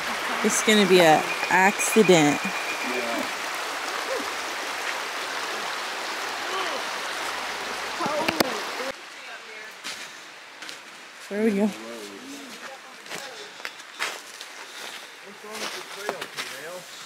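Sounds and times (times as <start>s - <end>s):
faint voices: 0.0s - 3.3s
rocky stream rushing: 0.0s - 9.2s.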